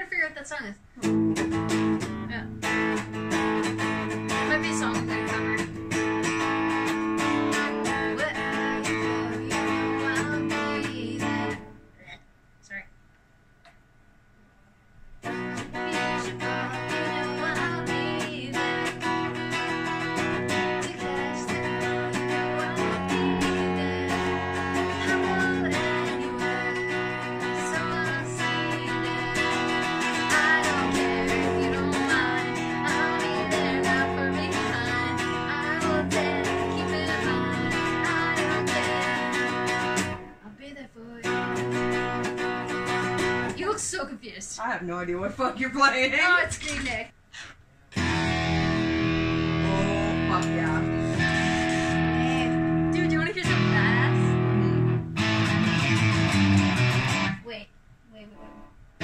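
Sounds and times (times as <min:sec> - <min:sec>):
guitar plucked notes and chords: 0:01.0 - 0:11.8, 0:15.2 - 0:40.4, 0:41.2 - 0:43.7, 0:48.0 - 0:57.5.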